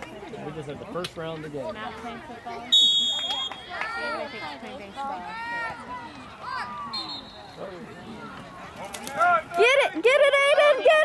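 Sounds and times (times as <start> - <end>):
referee's whistle: 2.6 - 3.7, 6.8 - 7.6.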